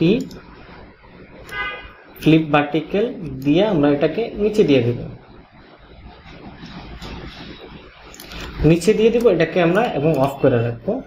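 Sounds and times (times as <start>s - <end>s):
room noise rumble and hiss: 0.0s - 11.0s.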